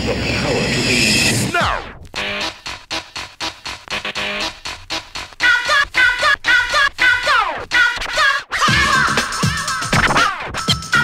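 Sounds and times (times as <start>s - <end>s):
vinyl record scratching: 0.2s - 11.0s
drum beat: 1.6s - 11.0s.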